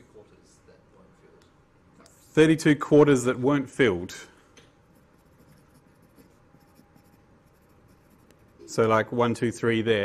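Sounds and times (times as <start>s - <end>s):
pencil scratching on paper: 4.9s - 8.8s.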